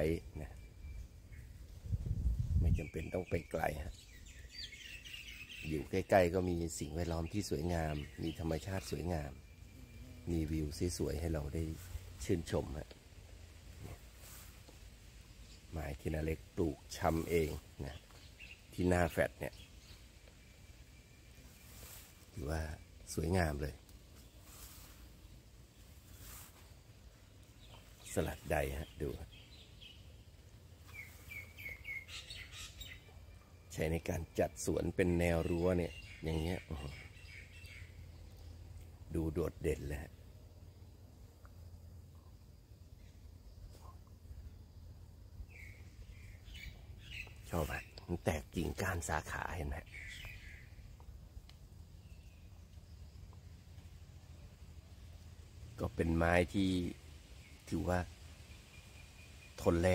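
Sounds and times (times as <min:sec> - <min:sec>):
birds chirping: 0:00.0 - 0:59.9
faint high bird calls: 0:30.8 - 0:38.6, 0:45.4 - 0:51.1
songbird whistling notes: 0:30.9 - 0:33.2, 0:49.9 - 0:50.8.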